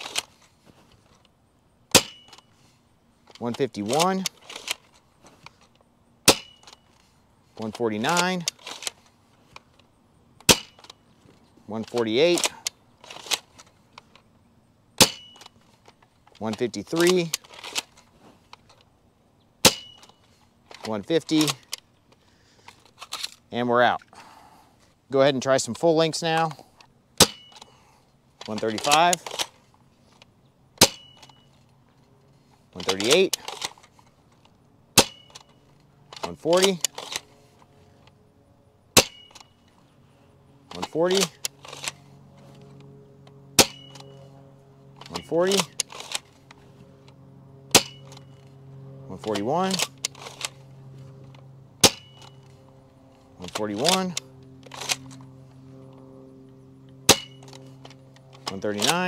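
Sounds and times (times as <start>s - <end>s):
toy blaster firing crack: 1.9s - 2.4s, 10.4s - 10.9s, 43.6s - 44.1s
thin high ringing tone: 39.0s - 39.7s, 43.7s - 44.3s.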